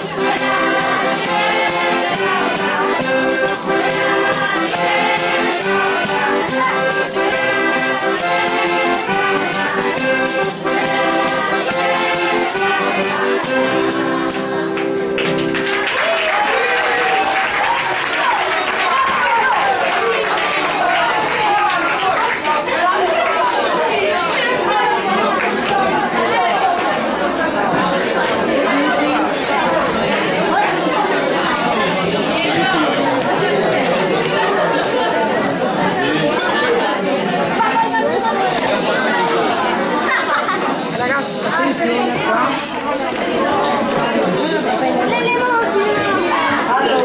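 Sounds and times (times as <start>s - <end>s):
children chattering in echoing hall: 0.0s - 47.0s.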